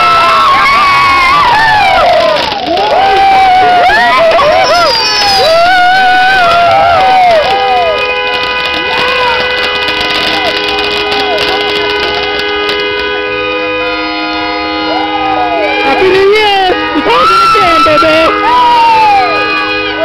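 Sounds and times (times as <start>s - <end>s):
fireworks crackling: 0.0s - 14.2s
people shouting and cheering: 0.0s - 20.0s
horn sounding a long chord: 4.1s - 20.0s.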